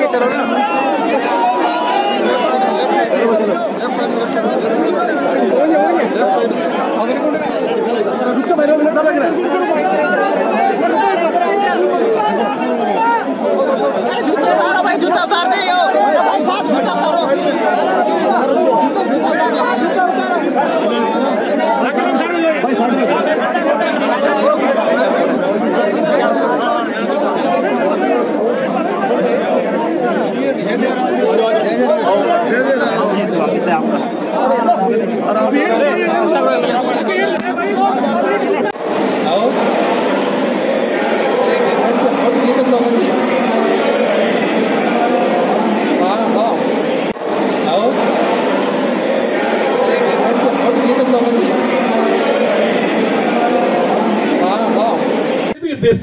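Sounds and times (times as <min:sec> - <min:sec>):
crowd chatter: 0:00.0 - 0:56.0.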